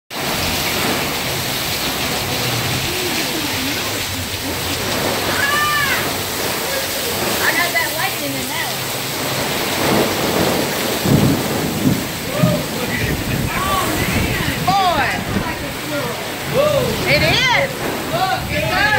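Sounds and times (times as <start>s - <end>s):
heavy rain on fabric canopies: 0.1s - 18.9s
wind: 0.1s - 18.9s
voices calling out: 1.8s - 9.0s, 12.1s - 18.9s.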